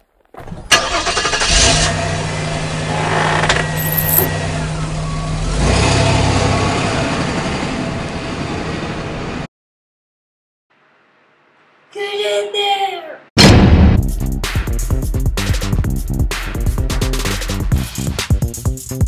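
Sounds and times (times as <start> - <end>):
car engine starting and revving: 0.5 - 9.5.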